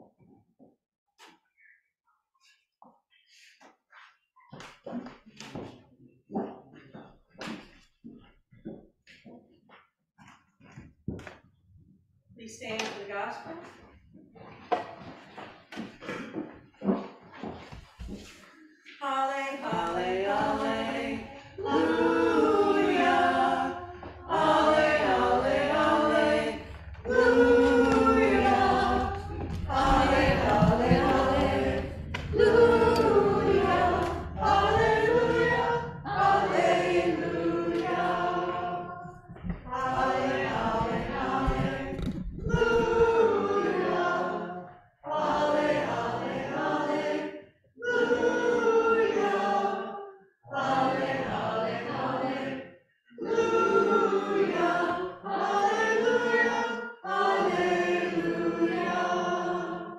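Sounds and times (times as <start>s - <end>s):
congregation singing a hymn: 19.0s - 59.9s.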